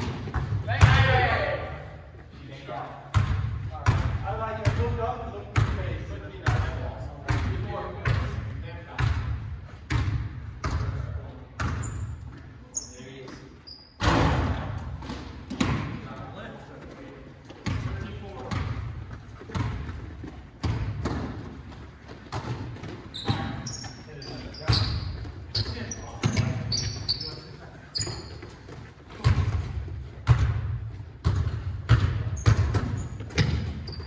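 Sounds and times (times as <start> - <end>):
sneaker squeaks: 11.6 - 14.2, 17.5 - 29.7, 31.2 - 34.0
basketball bouncing on hardwood: 18.5 - 23.6, 29.2 - 34.0.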